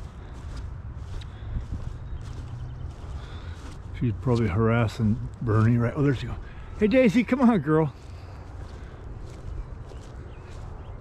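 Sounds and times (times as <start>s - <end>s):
low wind rumble on microphone: 0.0s - 6.8s, 7.9s - 11.0s
footsteps on wet grass: 0.0s - 11.0s.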